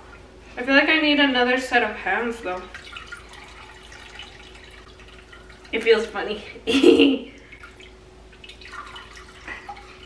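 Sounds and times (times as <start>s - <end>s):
juice dripping into glass bowl: 2.6s - 5.8s, 7.4s - 10.0s.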